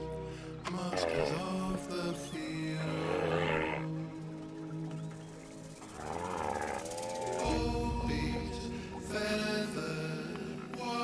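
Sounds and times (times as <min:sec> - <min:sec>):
low sustained soundtrack music: 0:00.0 - 0:11.0
harsh wavering bird calls: 0:00.5 - 0:07.8.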